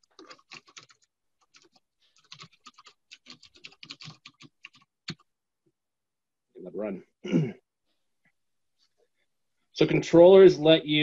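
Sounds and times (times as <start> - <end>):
typing on keyboard: 0.0 - 5.3.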